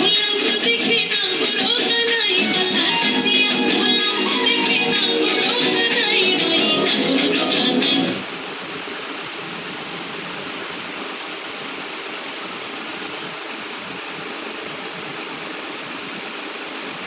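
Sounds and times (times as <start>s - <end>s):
steady hiss: 0.0s - 17.0s.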